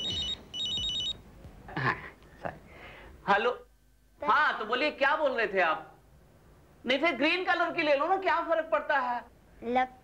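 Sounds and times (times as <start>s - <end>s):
telephone ringer trilling: 0.0s - 1.2s.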